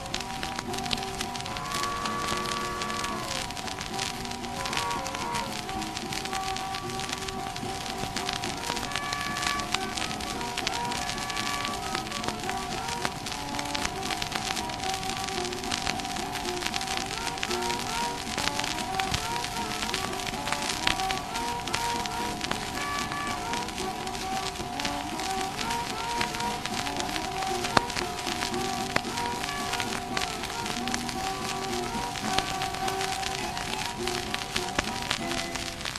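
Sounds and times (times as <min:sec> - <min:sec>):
guitar playing: 0:00.0 - 0:35.9
harmonica bent notes: 0:00.0 - 0:35.9
record crackle and hiss: 0:00.0 - 0:35.9.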